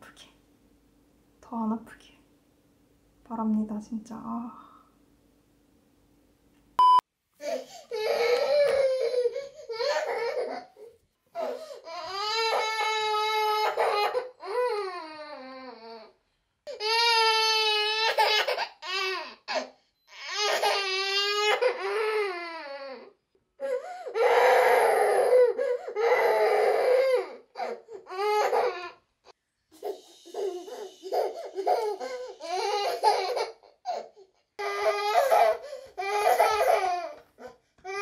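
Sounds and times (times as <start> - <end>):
baby crying: 7.4 - 16.1, 16.7 - 29.0, 29.8 - 38.0.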